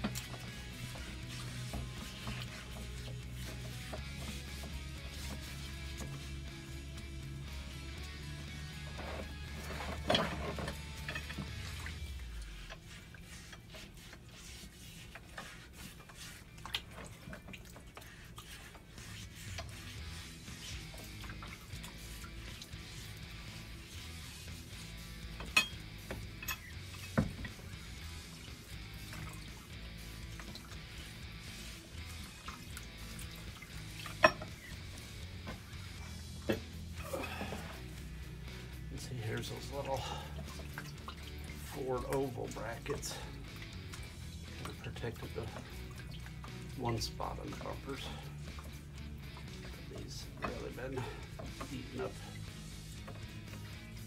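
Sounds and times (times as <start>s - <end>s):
background music: 0.0s - 13.0s, 14.0s - 54.0s
light water splashes: 15.6s - 20.0s, 39.3s - 52.4s.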